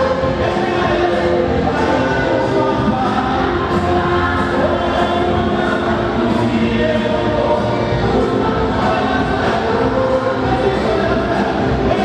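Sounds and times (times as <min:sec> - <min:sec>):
congregation singing: 0:00.0 - 0:12.0.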